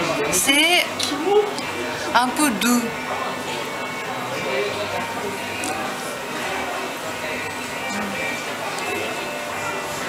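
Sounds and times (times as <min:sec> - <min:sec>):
indistinct voices: 0:07.8 - 0:08.4.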